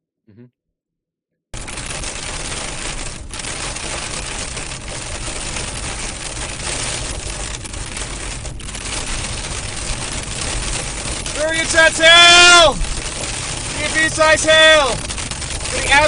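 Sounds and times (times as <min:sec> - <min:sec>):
hail pelting a car windshield: 0:01.6 - 0:16.0.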